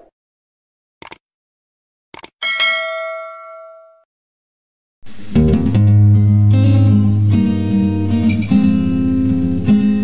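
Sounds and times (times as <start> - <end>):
bell ding: 2.4 - 4.1.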